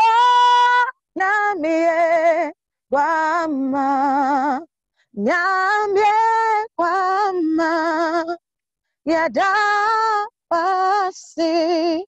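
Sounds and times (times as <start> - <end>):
woman singing unaccompanied: 0.0 - 12.0.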